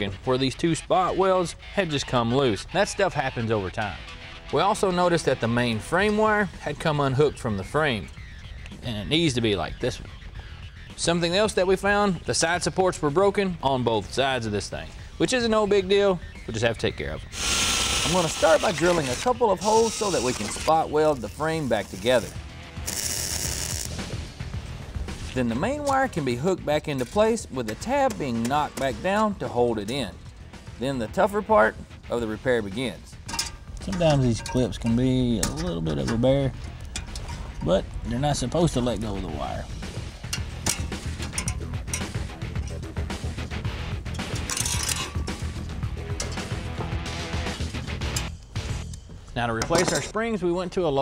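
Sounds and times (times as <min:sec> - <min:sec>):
background music: 0:00.0 - 0:51.0
electric welder crackling: 0:17.3 - 0:24.1
metallic clicks and scrapes: 0:33.2 - 0:37.7, 0:40.2 - 0:42.9, 0:44.0 - 0:46.8.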